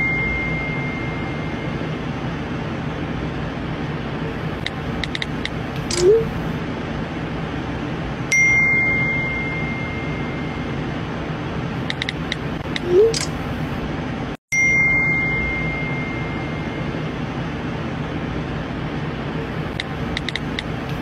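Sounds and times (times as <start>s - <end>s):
incoming message ding: 0.0s - 2.0s, 5.9s - 6.3s, 8.3s - 11.0s, 12.8s - 13.3s, 14.6s - 17.1s.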